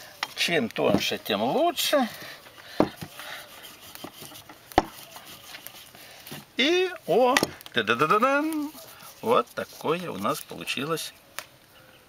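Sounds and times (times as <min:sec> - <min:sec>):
rolling pin rubbing over dough: 0:00.4 - 0:11.1.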